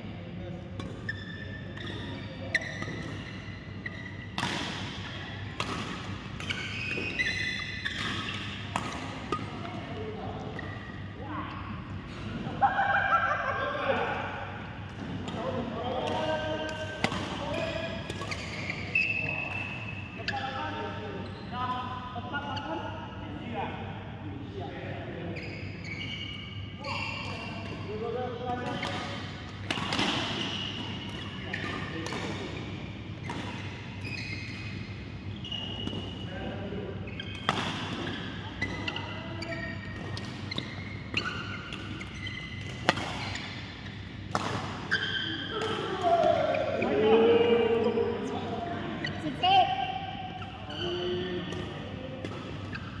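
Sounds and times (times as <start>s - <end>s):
rackets hitting shuttlecocks: 4.3s - 7.2s, 44.2s - 46.4s
people talking: 15.3s - 18.0s, 45.5s - 49.9s.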